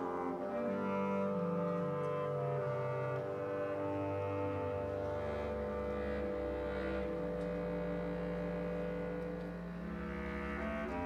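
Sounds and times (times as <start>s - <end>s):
low brass and reeds bass line: 0.0s - 11.0s
wind band sustained chords: 0.0s - 11.0s.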